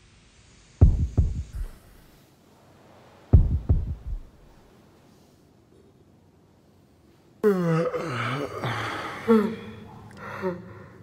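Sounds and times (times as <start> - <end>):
deep dull thuds: 0.8 - 1.8, 3.3 - 4.5.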